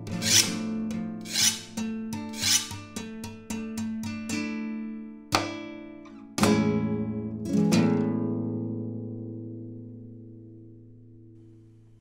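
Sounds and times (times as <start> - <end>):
rasping scraping sound: 0.0 - 2.8
plucked acoustic guitar chords: 0.0 - 11.4.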